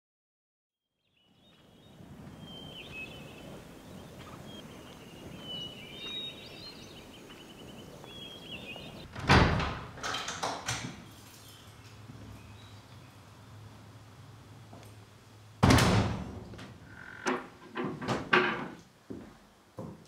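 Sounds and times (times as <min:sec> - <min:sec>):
small birds chirping: 0:01.0 - 0:09.1, 0:11.0 - 0:13.6
wooden door clunking and rattling: 0:09.0 - 0:11.1, 0:15.6 - 0:18.8.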